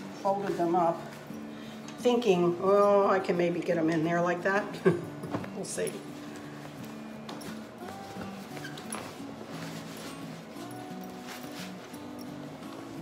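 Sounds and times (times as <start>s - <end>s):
slow background music: 0.0s - 13.0s
clothes rustling and knocking: 4.8s - 13.0s.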